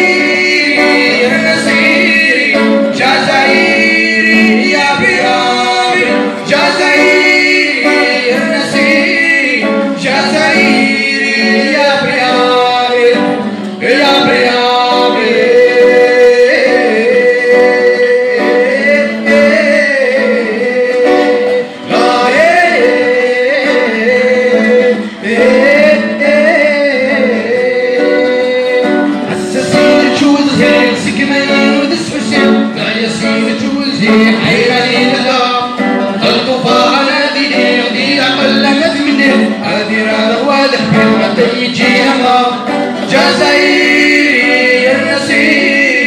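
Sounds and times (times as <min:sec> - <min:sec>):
acoustic guitar: 0:00.0 - 0:46.0
man singing: 0:00.0 - 0:46.0.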